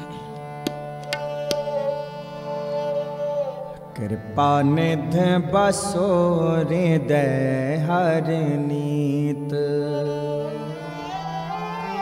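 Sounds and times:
bowed string instrument: 0:00.0 - 0:12.0
harmonium: 0:00.0 - 0:12.0.

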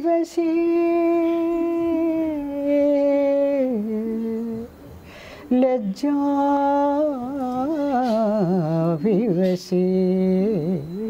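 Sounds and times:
woman singing unaccompanied: 0:00.0 - 0:04.8, 0:05.5 - 0:11.0.

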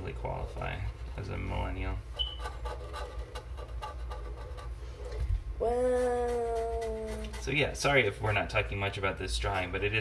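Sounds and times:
high squeak: 0:02.2 - 0:02.6
pens scratching on paper: 0:02.2 - 0:05.2, 0:05.9 - 0:08.1.

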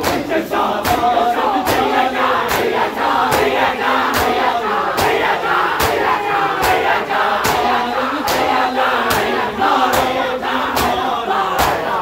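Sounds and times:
crowd shouting and chanting: 0:00.0 - 0:12.0
hands slapping chests: 0:00.0 - 0:12.0.

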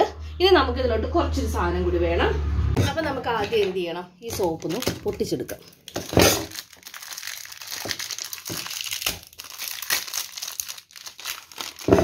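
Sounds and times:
plastic wrapper crinkling: 0:03.6 - 0:12.0.

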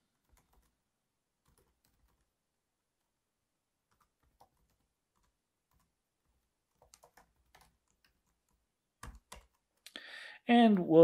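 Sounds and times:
typing on computer keyboard: 0:00.2 - 0:00.8, 0:01.4 - 0:02.3, 0:03.9 - 0:09.8.

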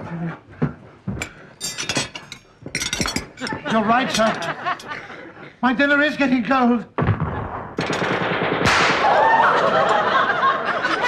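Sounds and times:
machine-gun fire: 0:07.0 - 0:09.4
loud blast: 0:07.0 - 0:09.6.

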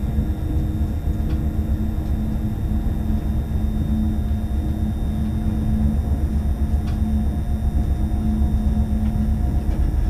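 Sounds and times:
electric train running on track: 0:00.0 - 0:10.0.

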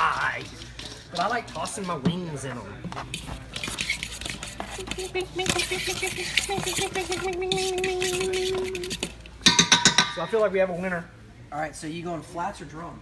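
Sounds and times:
metal bowl clinks and scrapes: 0:00.0 - 0:10.4
spoon clanking against bowl: 0:04.9 - 0:10.3.

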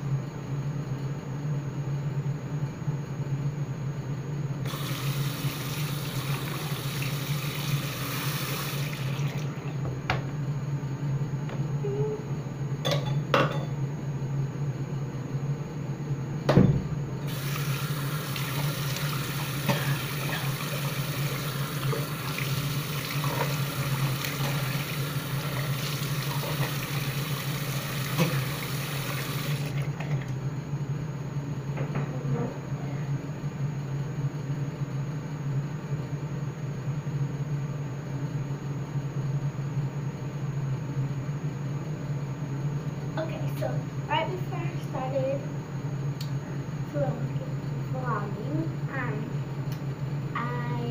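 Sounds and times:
steady low hum: 0:00.0 - 0:50.9
water running from a tap: 0:04.7 - 0:09.8, 0:17.3 - 0:30.2
thump: 0:16.5 - 0:16.9.

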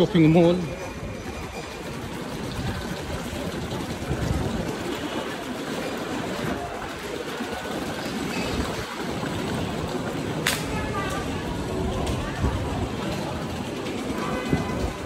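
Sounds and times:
busy concourse background noise: 0:00.0 - 0:15.0.

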